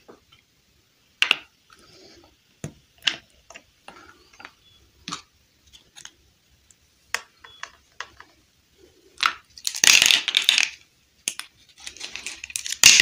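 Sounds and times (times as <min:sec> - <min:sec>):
plastic pieces clattering: 0:09.2 - 0:13.0
plastic pieces clicking and tapping: 0:09.2 - 0:13.0
plastic pieces rattling: 0:09.2 - 0:13.0.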